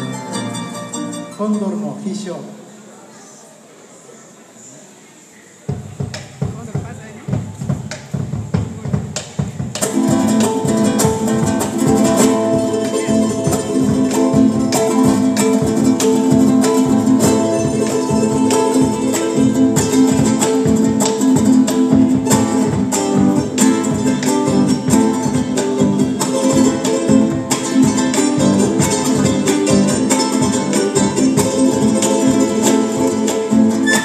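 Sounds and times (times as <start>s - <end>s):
folk band playing: 0.0s - 2.2s, 5.7s - 34.0s
strummed strings: 0.0s - 2.4s, 5.7s - 34.0s
wooden drum played with sticks: 5.7s - 34.0s.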